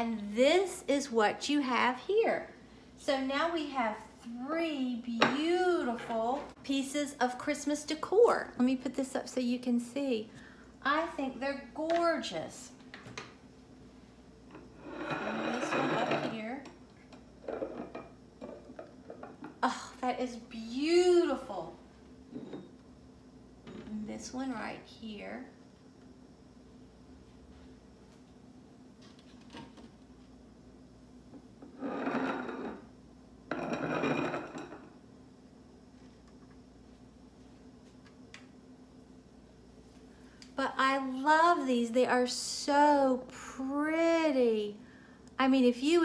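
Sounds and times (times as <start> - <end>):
glass scraping across stone countertop: 14.5 - 16.4, 31.6 - 32.9, 33.5 - 34.9.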